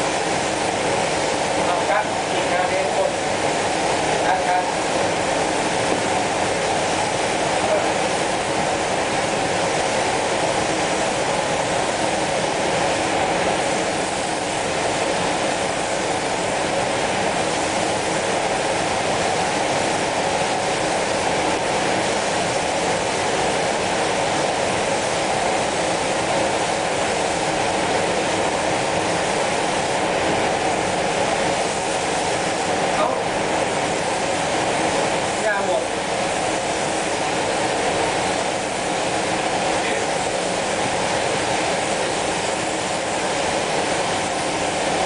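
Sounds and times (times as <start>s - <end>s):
spray gun hissing: 0.0s - 45.0s
ventilation running: 0.0s - 45.0s.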